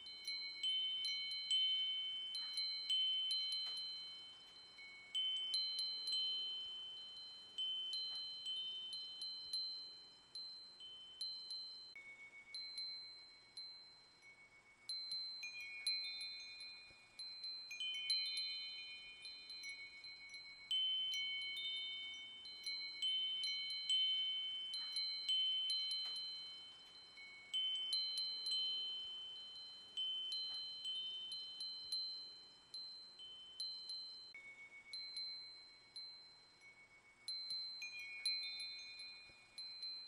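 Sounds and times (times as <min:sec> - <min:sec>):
wind chimes ringing: 0:00.0 - 0:40.0.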